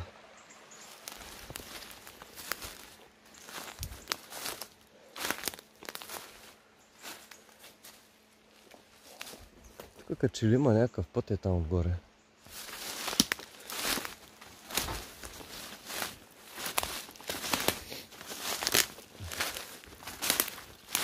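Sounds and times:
footsteps on dry leaves: 0:00.7 - 0:10.1, 0:12.4 - 0:21.0.

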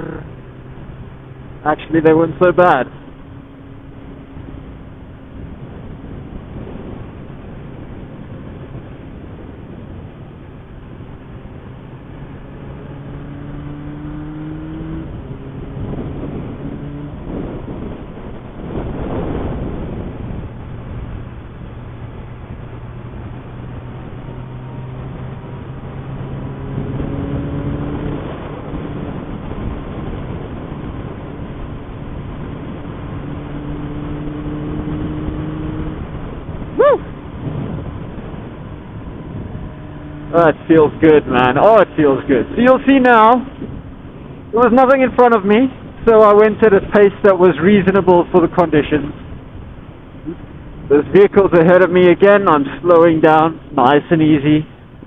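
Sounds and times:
motorcycle engine accelerating: 0:00.0 - 0:55.0
wind rush on microphone: 0:00.0 - 0:55.0.

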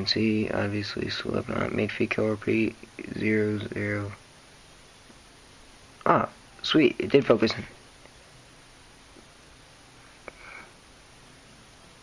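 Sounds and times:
breathy noise near microphone: 0:00.0 - 0:12.0
room hiss: 0:00.0 - 0:12.0.

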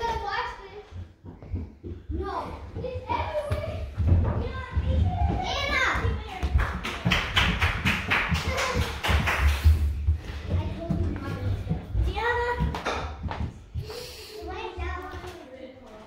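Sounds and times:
quick taps and thumps: 0:00.8 - 0:14.0
children's excited voices: 0:02.1 - 0:07.1, 0:08.2 - 0:09.7.

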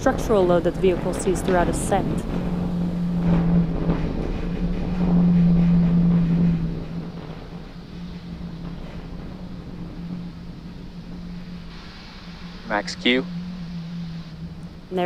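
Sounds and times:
rocket low drone: 0:00.0 - 0:15.0
rushing noise: 0:00.0 - 0:15.0.

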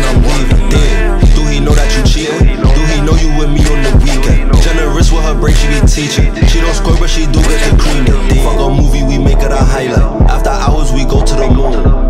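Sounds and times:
hip hop beat with heavy bass: 0:00.0 - 0:12.0
rapping vocals: 0:00.0 - 0:12.0.

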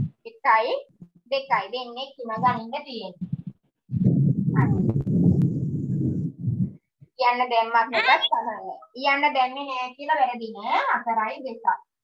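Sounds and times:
muffled rumbling noise: 0:02.3 - 0:07.0.

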